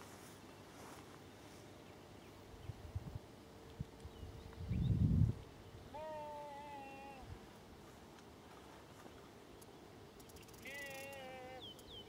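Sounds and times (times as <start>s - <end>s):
drawn-out animal cry: 5.9s - 7.3s, 10.6s - 11.8s.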